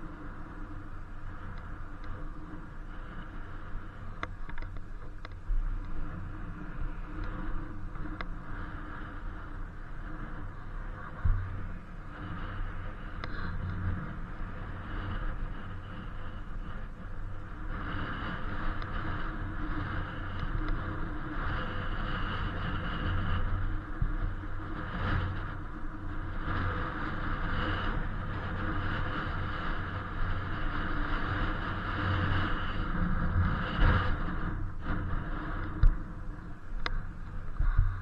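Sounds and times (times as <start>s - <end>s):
wind and road noise: 0.0s - 38.0s.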